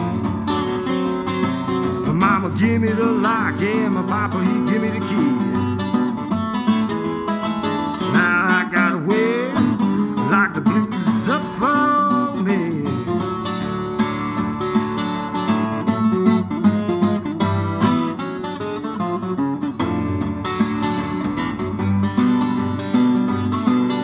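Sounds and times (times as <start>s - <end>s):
fingerstyle acoustic guitar: 0.0s - 24.0s.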